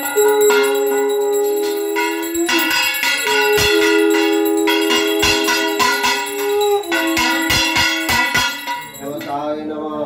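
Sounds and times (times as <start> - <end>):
held note: 0.0 - 9.5
bells rung in steady rhythm: 0.0 - 10.0.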